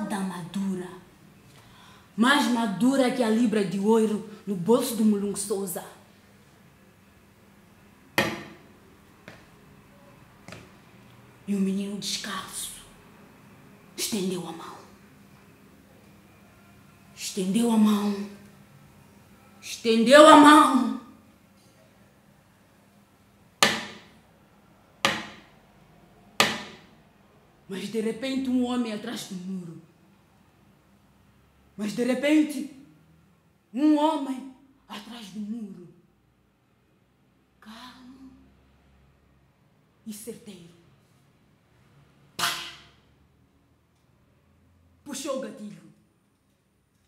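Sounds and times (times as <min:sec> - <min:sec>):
sharp knocks: 0:08.2 - 0:08.7, 0:23.6 - 0:24.2, 0:25.0 - 0:25.5, 0:26.4 - 0:26.9.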